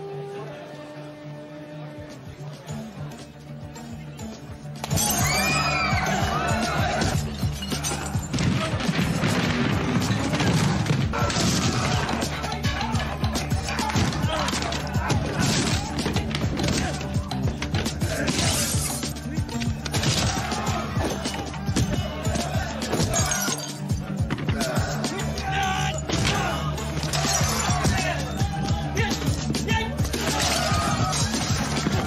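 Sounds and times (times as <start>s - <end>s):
voices shouting: 4.9s - 9.1s, 10.2s - 32.0s.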